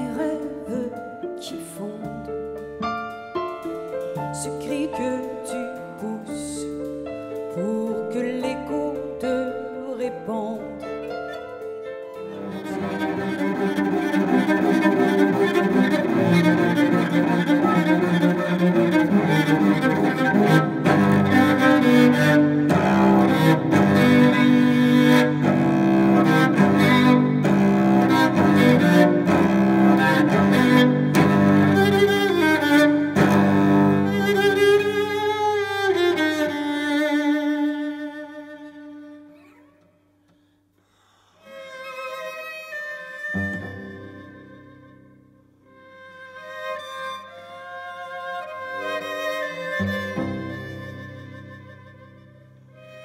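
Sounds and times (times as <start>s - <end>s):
cello bowed: 0.0s - 40.5s, 41.1s - 53.0s.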